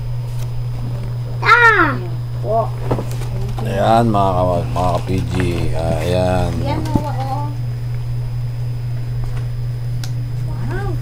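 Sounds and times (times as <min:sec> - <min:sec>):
steady low hum: 0:00.0 - 0:11.0
child squealing: 0:01.4 - 0:02.1.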